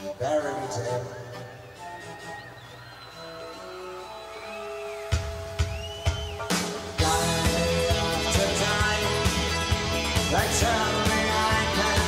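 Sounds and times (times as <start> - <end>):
live rock music: 0.0 - 12.0.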